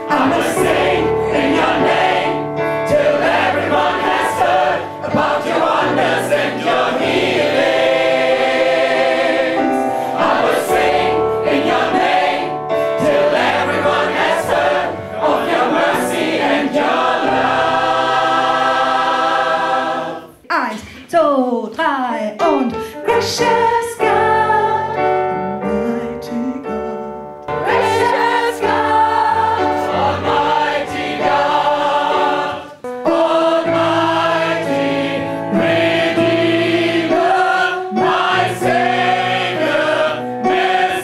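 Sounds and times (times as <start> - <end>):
choir singing gospel: 0.0 - 20.4, 23.0 - 25.0, 27.5 - 41.0
electric stage piano: 0.0 - 20.5, 22.4 - 41.0.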